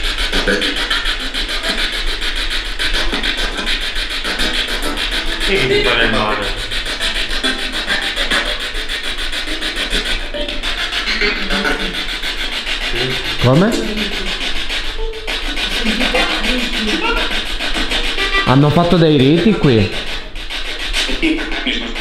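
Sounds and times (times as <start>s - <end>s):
broadcast music fragments: 5.0s - 12.2s, 18.0s - 19.9s
broadcast voice fragments: 5.4s - 6.7s, 12.9s - 14.2s, 18.2s - 20.0s
radio static chopping: 15.3s - 19.9s.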